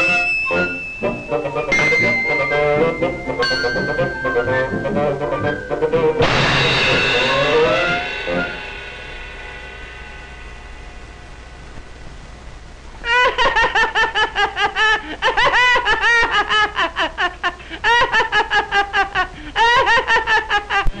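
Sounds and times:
cartoon character laughing: 0:13.0 - 0:21.0.

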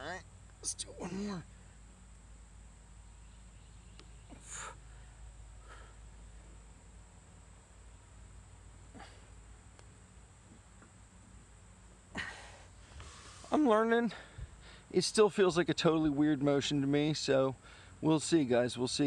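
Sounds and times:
faint steady hum: 0:00.0 - 0:19.0
man breathing sharply: 0:04.3 - 0:06.2, 0:12.2 - 0:14.9, 0:17.6 - 0:18.0.

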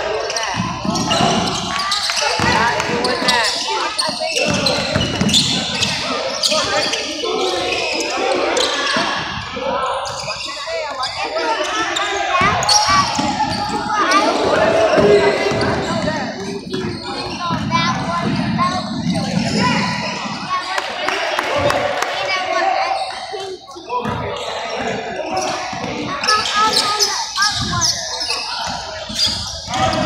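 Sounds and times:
players' voices echoing: 0:00.0 - 0:30.0.

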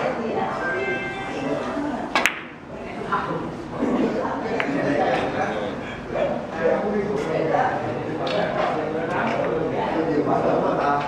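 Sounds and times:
low chatter of onlookers: 0:00.0 - 0:11.0
billiard balls clicking: 0:02.2 - 0:02.6.

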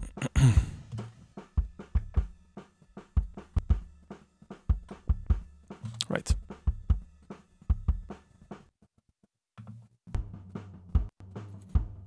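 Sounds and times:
kick drum thumps: 0:01.6 - 0:02.3.

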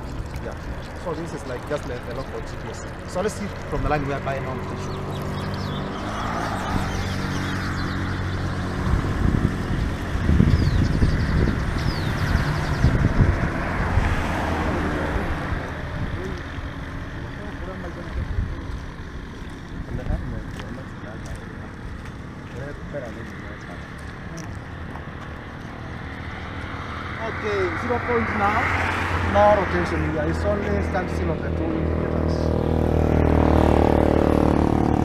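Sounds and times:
vehicle engine hum: 0:00.0 - 0:35.0
vehicle passing by: 0:00.0 - 0:35.0.

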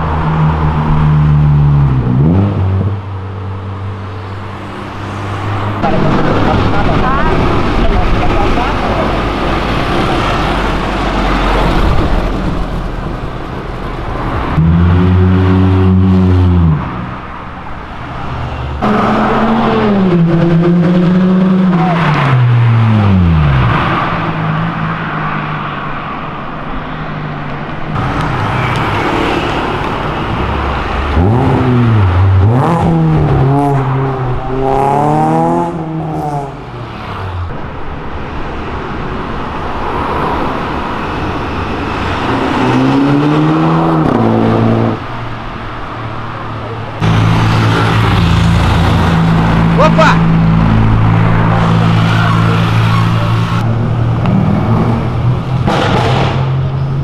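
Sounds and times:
cars accelerating hard: 0:13.8 - 0:26.4, 0:27.9 - 0:57.0.

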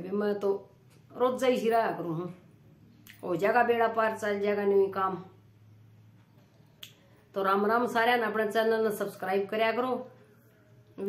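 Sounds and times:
woman speaking: 0:00.0 - 0:02.5, 0:03.1 - 0:05.4, 0:07.3 - 0:10.2.

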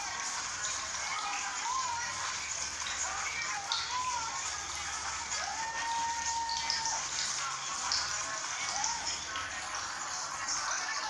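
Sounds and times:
music with sung melody: 0:00.0 - 0:11.0.

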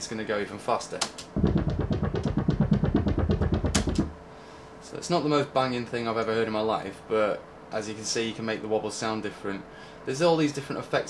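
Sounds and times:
synthesizer bass wobble: 0:01.4 - 0:04.1.

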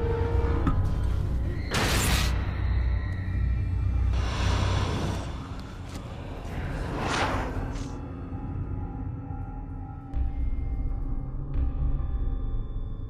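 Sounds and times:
dark trailer music drone: 0:00.0 - 0:13.0.

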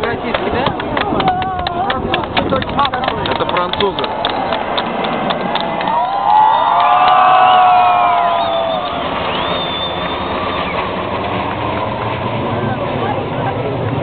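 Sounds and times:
jet engines flying over: 0:00.0 - 0:14.0
spectators' voices: 0:12.3 - 0:14.0.

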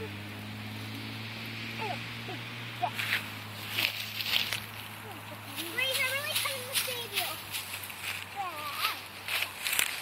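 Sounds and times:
pine branches rustling: 0:02.8 - 0:10.0
child's wordless sing-song voice: 0:05.1 - 0:07.5.

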